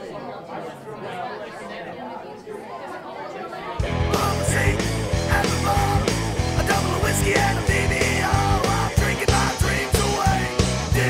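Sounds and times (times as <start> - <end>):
people chatting: 0.0 - 11.0
punk rock band playing: 3.8 - 11.0.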